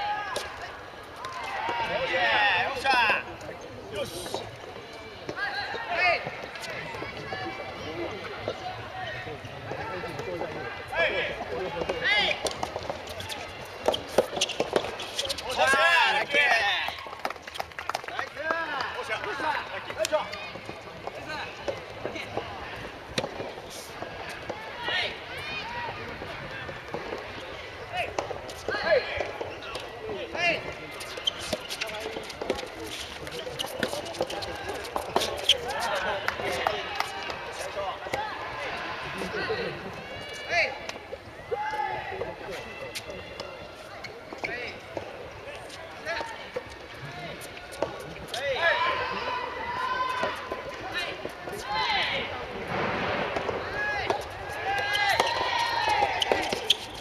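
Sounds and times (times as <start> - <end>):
players shouting: 0.0 - 3.3, 13.2 - 17.0, 48.2 - 57.0.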